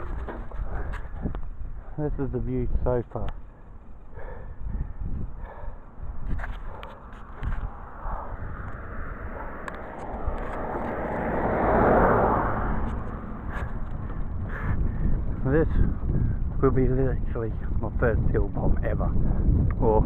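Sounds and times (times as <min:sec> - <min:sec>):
wind rumbling on microphone: 0:00.0 - 0:20.0
broad rushing sound: 0:06.5 - 0:13.8.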